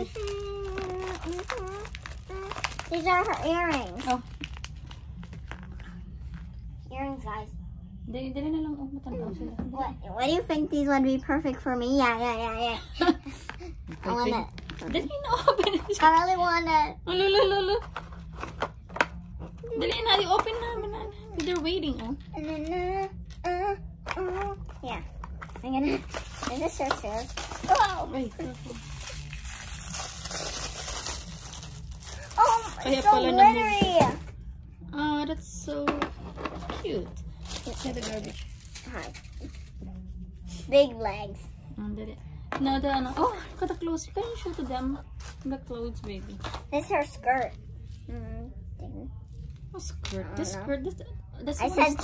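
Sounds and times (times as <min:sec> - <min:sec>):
plastic packaging crinkling: 0:00.0 - 0:06.4, 0:25.3 - 0:33.6, 0:37.2 - 0:39.8.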